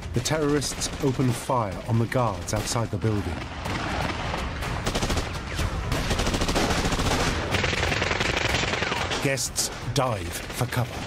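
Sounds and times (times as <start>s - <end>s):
rapid automatic gunfire: 0.1s - 2.9s, 3.5s - 9.3s.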